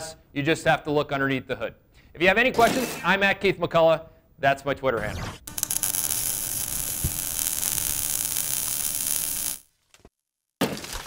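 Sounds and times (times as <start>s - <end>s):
electric buzz with static hiss: 5.4s - 9.7s.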